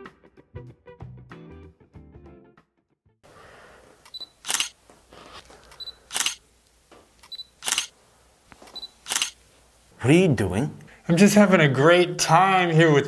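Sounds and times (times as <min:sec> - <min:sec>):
camera shutter click: 0:04.0 - 0:04.8, 0:05.7 - 0:06.4, 0:07.2 - 0:07.9, 0:08.8 - 0:09.4.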